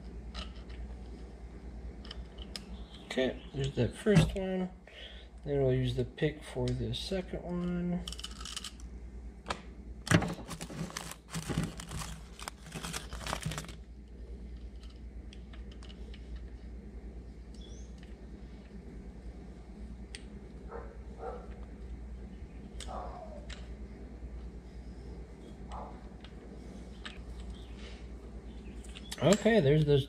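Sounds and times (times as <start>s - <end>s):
small clicks and scrapes: 0.0s - 1.3s, 2.0s - 3.7s, 14.5s - 16.7s, 24.4s - 28.0s
low steady hum: 0.0s - 30.0s.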